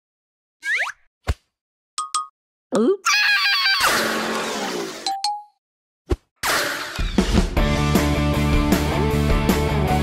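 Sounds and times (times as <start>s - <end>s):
cartoon upward-swooping whoop: 3.0s - 4.0s.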